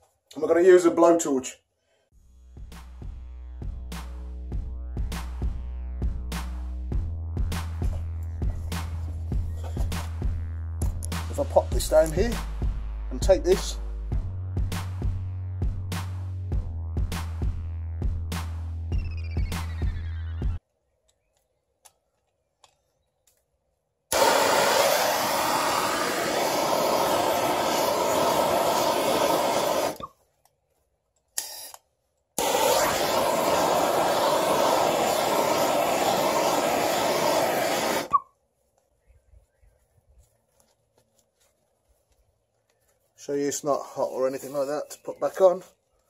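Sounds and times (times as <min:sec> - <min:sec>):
blowtorch flame hissing: 0:24.1 - 0:30.1, 0:32.4 - 0:38.2.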